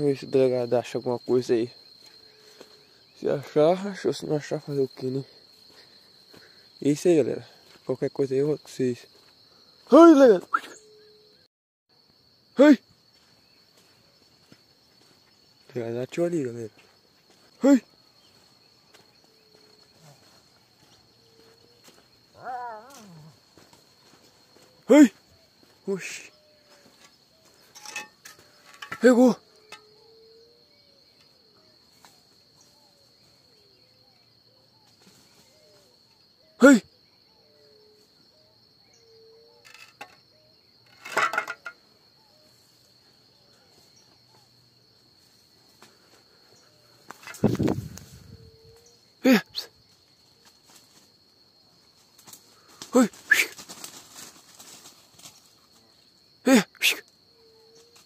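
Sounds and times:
high-pitched insect drone: 12.1s - 32.0s
rustling in dry undergrowth: 49.8s - 56.3s.

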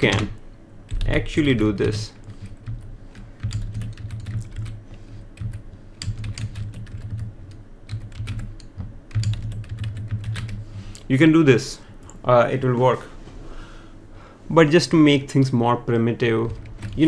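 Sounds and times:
keyboard typing clicks: 1.8s - 4.8s, 5.4s - 10.6s.

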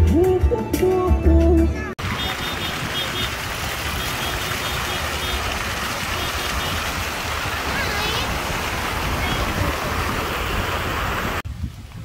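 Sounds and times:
fountain water rushing and splashing: 2.0s - 11.4s.

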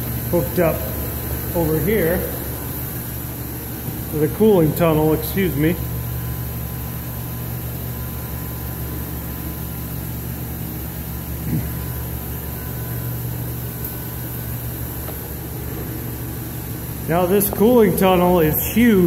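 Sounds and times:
faint steady machine whine: 0.0s - 19.0s
machine motors humming: 0.0s - 19.0s.

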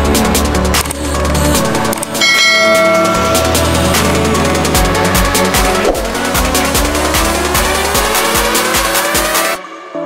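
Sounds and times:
electronic dance music: 0.4s - 9.6s
notification bell ding: 2.2s - 3.9s.

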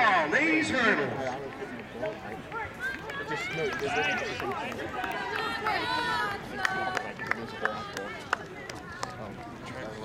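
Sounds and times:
people talking and laughing: 0.0s - 10.0s.

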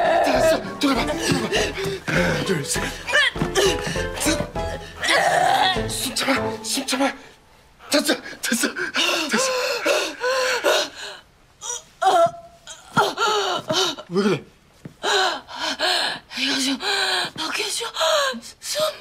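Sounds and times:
woman gasping and crying out: 0.0s - 5.8s.

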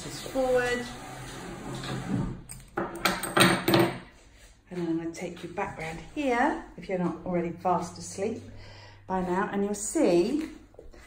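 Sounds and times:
loom scraping along wooden tabletop: 0.0s - 2.5s.

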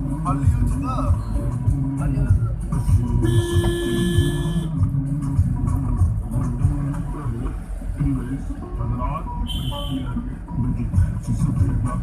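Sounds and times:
vehicle road noise rumble: 0.0s - 12.0s.

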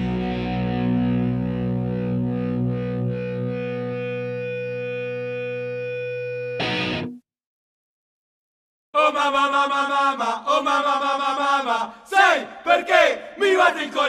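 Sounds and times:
distorted electric guitar chord ringing: 0.0s - 7.2s.

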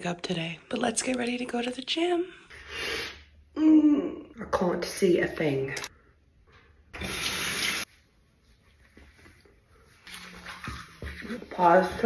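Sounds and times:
water running from sink tap: 7.0s - 7.9s.

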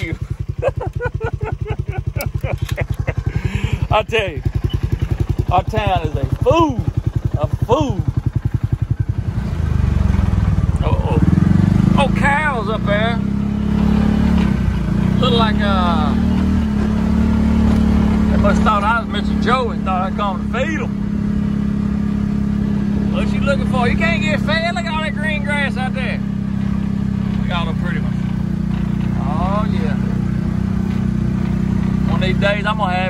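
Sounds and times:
vehicle engine low drone: 0.0s - 33.0s.

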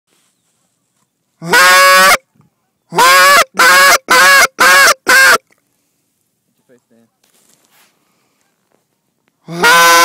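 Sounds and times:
goose call honk: 1.4s - 2.2s, 2.9s - 5.4s, 9.5s - 10.0s.

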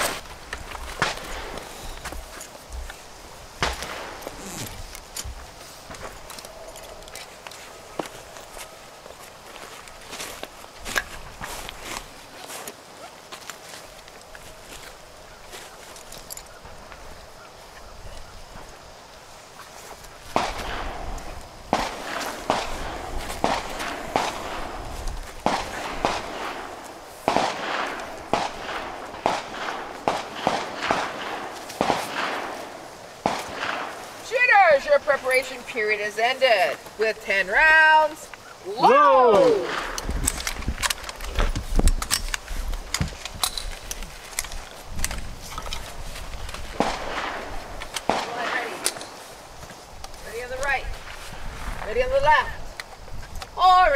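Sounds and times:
sharp cracks: 0.0s - 17.0s, 19.8s - 35.8s, 36.4s - 50.9s.

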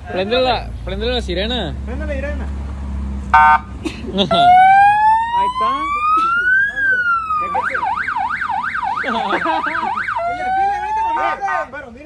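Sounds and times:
electronic siren wailing and yelping: 3.4s - 3.7s, 4.3s - 11.5s.

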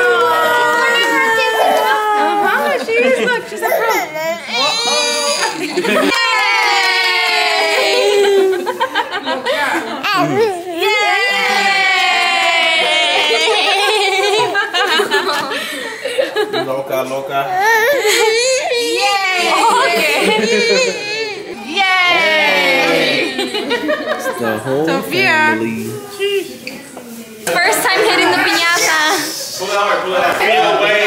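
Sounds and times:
baby crying: 0.0s - 2.8s, 3.6s - 5.6s, 10.0s - 10.9s, 17.5s - 21.6s.

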